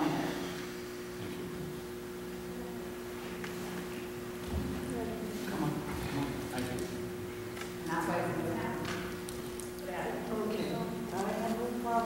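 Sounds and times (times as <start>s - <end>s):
indistinct speech in echoing hall: 0.0s - 3.2s, 3.8s - 12.0s
steady electrical hum: 0.0s - 12.0s.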